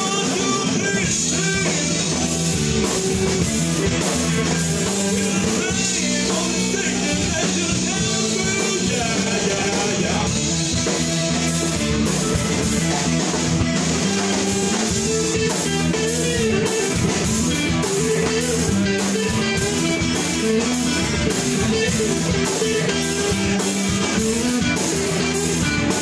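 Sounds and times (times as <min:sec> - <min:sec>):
funk band playing: 0:00.0 - 0:26.0.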